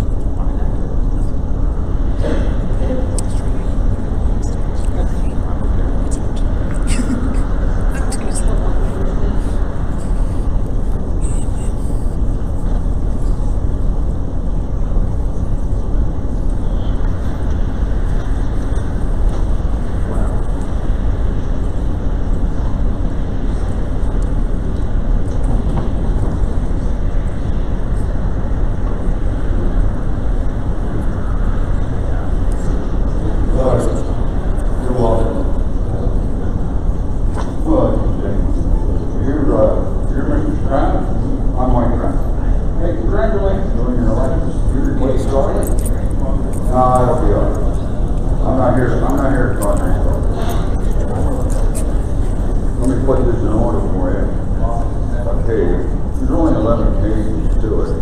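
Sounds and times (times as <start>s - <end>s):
low room rumble: 0.0s - 58.0s
murmured conversation: 0.0s - 58.0s.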